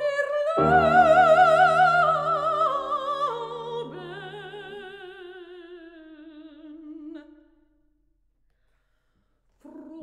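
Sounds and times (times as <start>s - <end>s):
piano: 0.0s - 6.2s
soprano singing: 0.0s - 7.4s.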